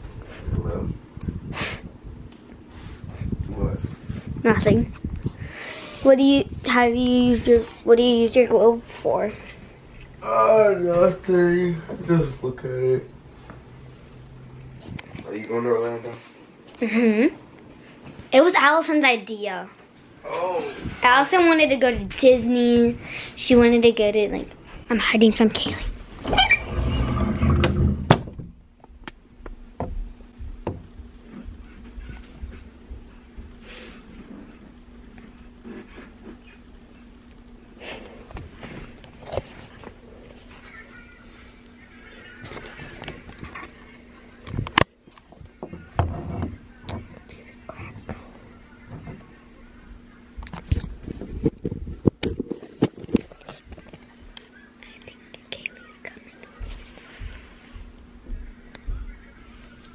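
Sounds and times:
faint steady hum: 0:00.0 - 0:59.9
child whispering: 0:40.3 - 0:42.5, 0:54.6 - 0:56.7.

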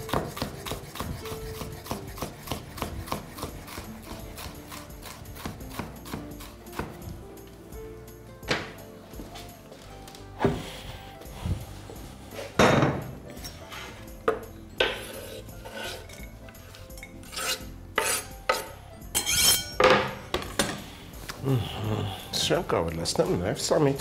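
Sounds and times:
quiet background music: 0:00.0 - 0:24.0.

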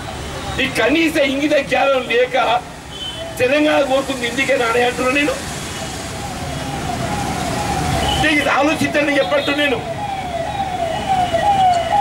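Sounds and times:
electronic siren falling tone: 0:06.2 - 0:08.2, 0:09.8 - 0:12.0.

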